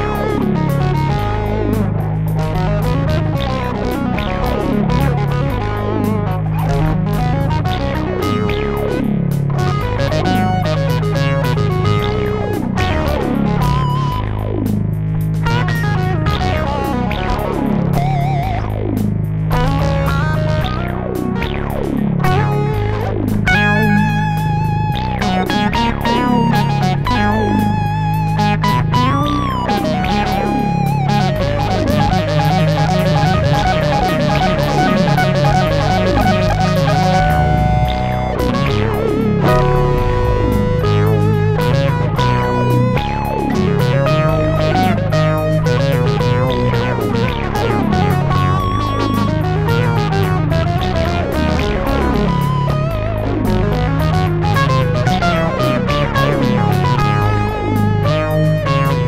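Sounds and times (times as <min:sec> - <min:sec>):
metal rhythm guitar and drums: 0:00.0 - 0:48.7
electric lead guitar: 0:00.0 - 0:59.0.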